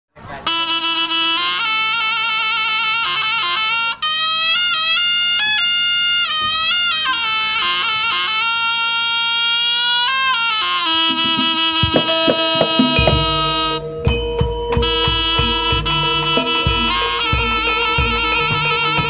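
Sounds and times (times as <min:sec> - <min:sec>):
reedy shawm melody: 0:00.3 - 0:19.0.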